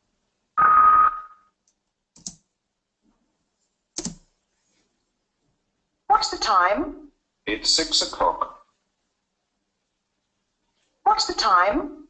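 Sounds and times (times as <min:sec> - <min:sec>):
short electronic beep: 0:00.6 - 0:01.4.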